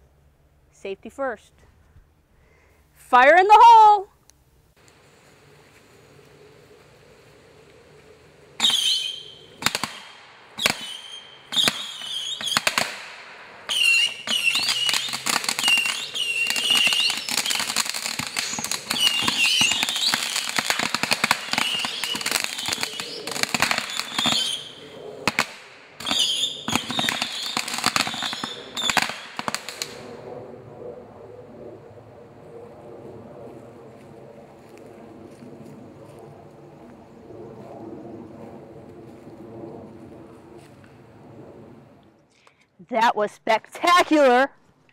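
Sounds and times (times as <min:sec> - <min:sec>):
firework burning: 0:04.8 - 0:32.8
firework whistles: 0:06.3 - 0:30.2
rapid firework bangs and crackling: 0:08.6 - 0:30.2.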